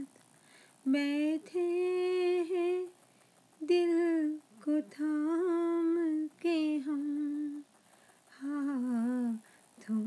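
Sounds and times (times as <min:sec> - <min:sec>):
person humming wordless melody: 0:03.6 - 0:07.7, 0:08.4 - 0:10.0.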